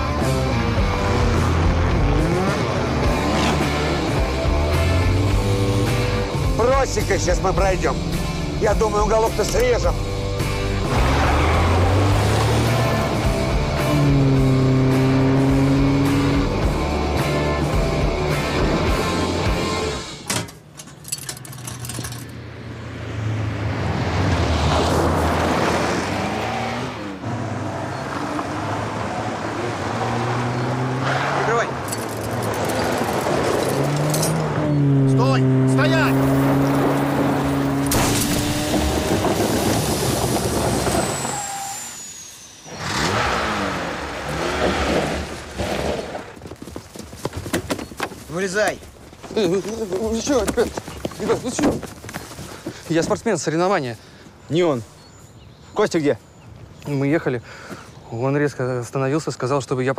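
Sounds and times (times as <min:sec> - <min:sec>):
car engines revving: 0:00.0 - 0:20.2, 0:21.8 - 0:46.4
tyres on gravel: 0:31.0 - 0:34.6, 0:35.2 - 0:54.8.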